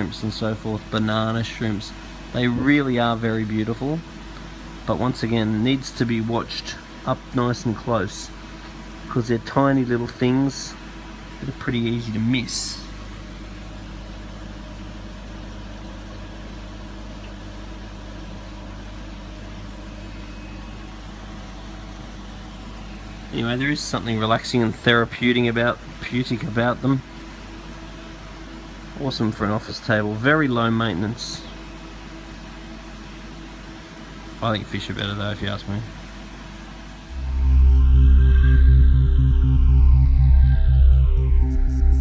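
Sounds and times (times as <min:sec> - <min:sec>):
machinery hum: 0:00.0 - 0:29.6, 0:36.9 - 0:42.0
faint constant tone: 0:00.0 - 0:42.0.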